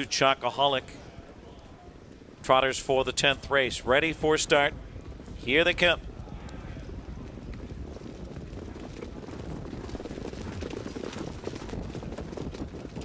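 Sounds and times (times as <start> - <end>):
hooves trotting on dirt track: 4.1 - 13.0.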